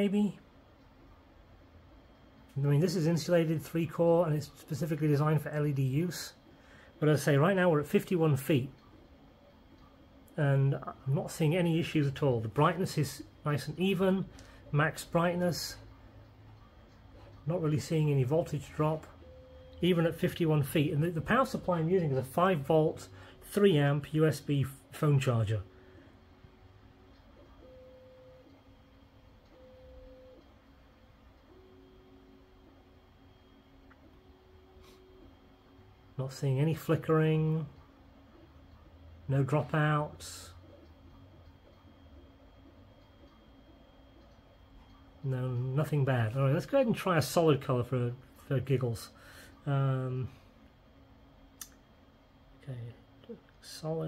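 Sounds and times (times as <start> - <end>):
faint steady hum: 0.0 - 54.0.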